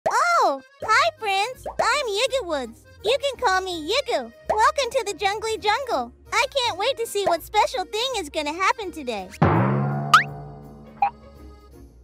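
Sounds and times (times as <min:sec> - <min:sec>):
soft children's music: 0:00.1 - 0:09.6, 0:10.2 - 0:12.0.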